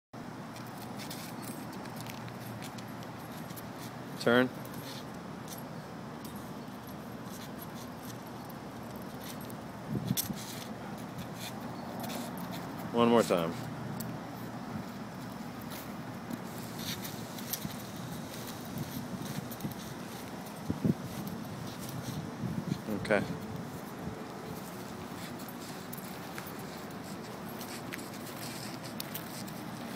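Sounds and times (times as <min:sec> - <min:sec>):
outdoor background hiss: 0:00.2 - 0:29.9
dog leash jingling: 0:23.4 - 0:29.9.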